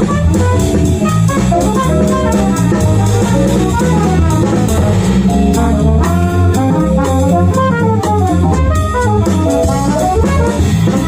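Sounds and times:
drum kit with cymbals: 0.0s - 11.0s
electric bass: 0.0s - 11.0s
electric keyboard: 0.0s - 11.0s
saxophone: 0.0s - 11.0s
trumpet: 0.0s - 11.0s.

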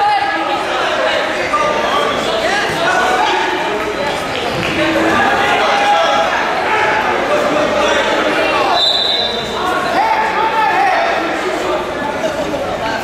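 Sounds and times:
people shouting in a gym: 4.7s - 11.9s.

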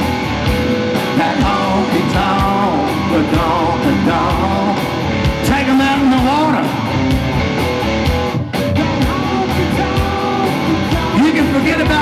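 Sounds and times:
bass: 0.0s - 12.0s
drums: 0.0s - 12.0s
electric guitar with bent notes: 0.0s - 12.0s.

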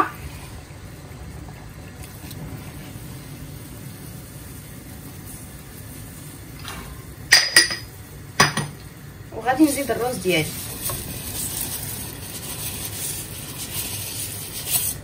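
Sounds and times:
water boiling in saucepan: 0.0s - 15.0s
kitchenware clinks: 7.3s - 8.8s.

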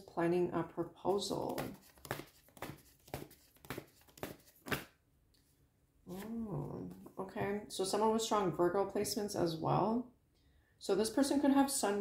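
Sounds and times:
cards being shuffled: 1.1s - 5.0s.

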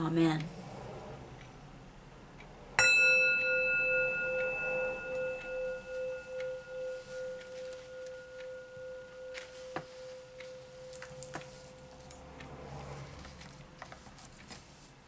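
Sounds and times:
metal singing bowl ringing: 2.8s - 12.3s.

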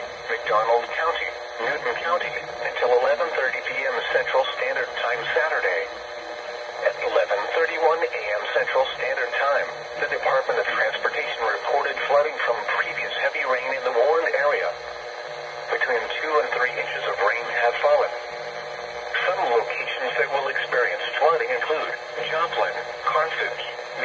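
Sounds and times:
automated voice through small speaker: 0.2s - 14.8s, 15.7s - 18.2s, 19.0s - 24.0s.

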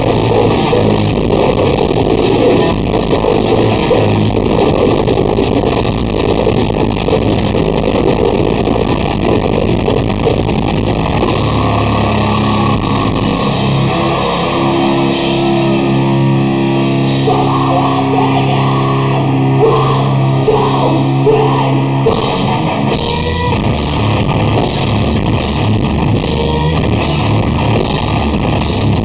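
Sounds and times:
drums: 0.0s - 29.0s
electric guitars: 0.0s - 29.0s.

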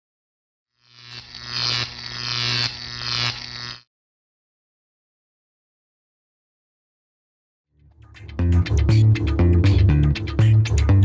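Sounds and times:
neon sign buzzing: 0.8s - 3.9s.

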